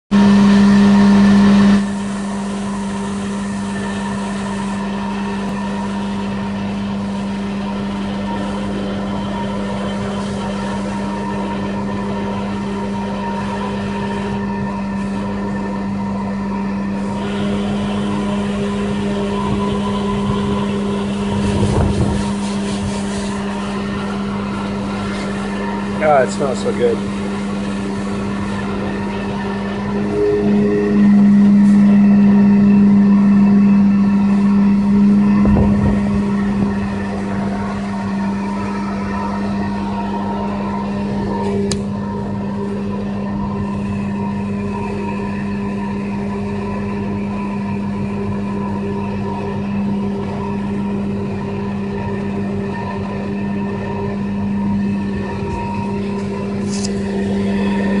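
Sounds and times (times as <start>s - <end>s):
pressure washer humming: 0.1s - 58.0s.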